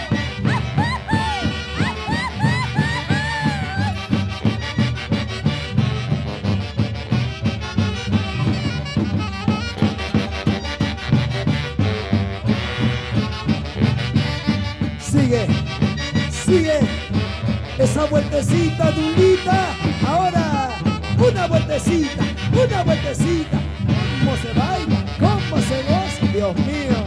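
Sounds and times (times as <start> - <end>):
saxophone melody: 0.0 - 27.0
steady drum beat: 0.0 - 27.0.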